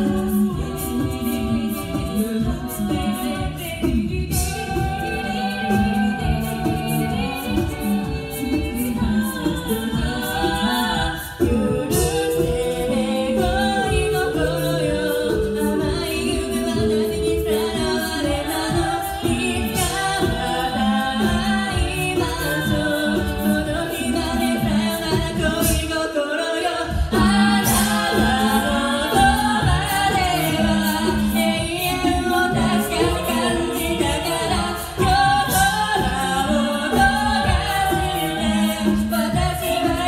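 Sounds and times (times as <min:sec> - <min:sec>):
female a cappella group singing: 0:00.0 - 0:40.0.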